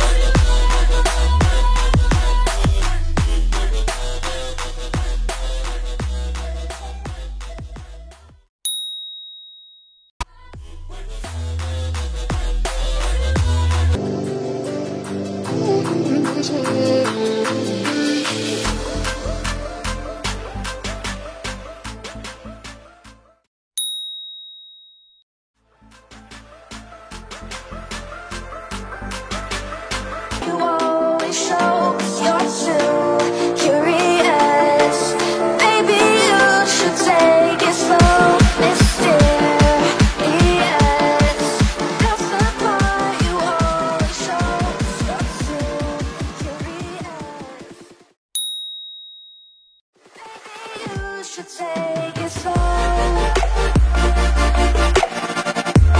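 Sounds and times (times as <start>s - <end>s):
beat music: 0.0s - 8.3s, 11.0s - 22.8s, 26.2s - 47.8s, 52.3s - 55.9s
high bell-like timer chime: 8.7s - 10.1s, 23.8s - 25.2s, 48.4s - 49.8s.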